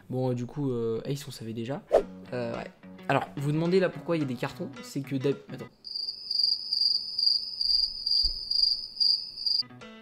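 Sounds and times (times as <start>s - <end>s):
cricket chirping: 5.8s - 9.6s.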